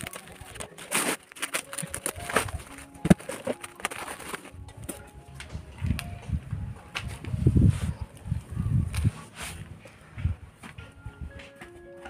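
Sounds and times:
scissors cutting plastic: 0.0s - 5.0s
plastic sack crinkling: 0.0s - 5.1s.

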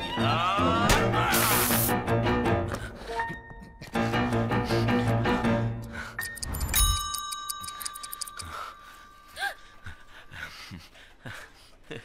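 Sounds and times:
high ringing chime tone: 6.3s - 10.2s.

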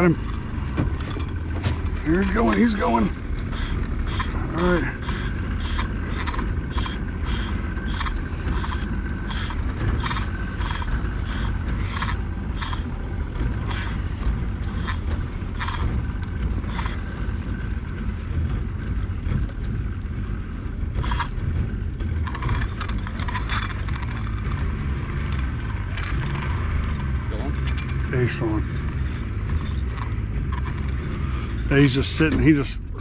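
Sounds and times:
low rumble: 0.0s - 33.0s
fishing reel clicking: 3.4s - 12.9s, 13.6s - 14.0s, 14.7s - 15.9s, 16.7s - 17.0s, 21.0s - 21.4s, 22.3s - 31.7s.

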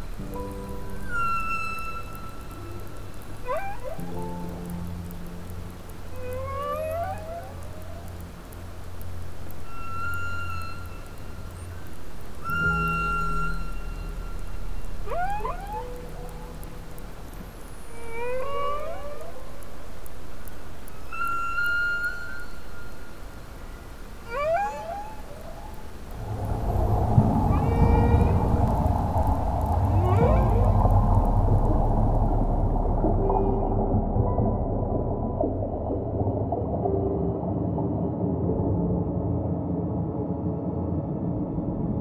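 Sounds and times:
whale whoops and moans: 1.0s - 4.2s, 6.0s - 8.2s, 15.0s - 16.7s, 17.9s - 19.7s, 24.2s - 34.8s
dense low sound bed: 26.0s - 42.0s.

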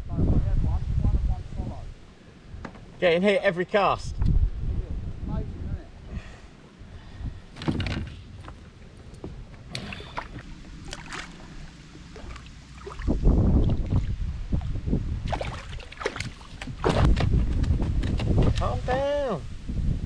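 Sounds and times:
wind rumble on microphone: 0.0s - 3.0s, 4.0s - 20.0s
water splashing: 8.3s - 17.4s.

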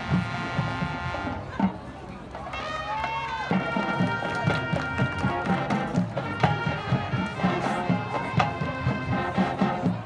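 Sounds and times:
marching band playing: 0.0s - 10.0s
steady drum beat: 3.1s - 10.0s.

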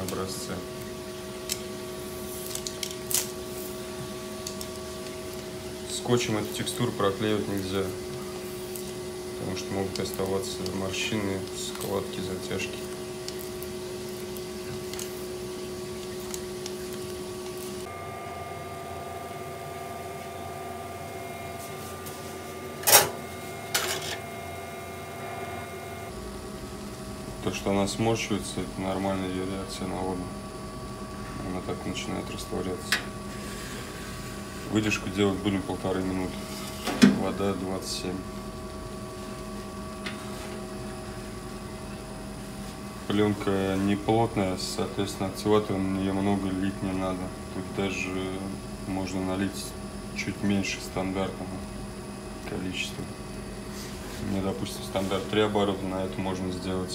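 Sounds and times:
electrical hum: 0.0s - 56.9s.

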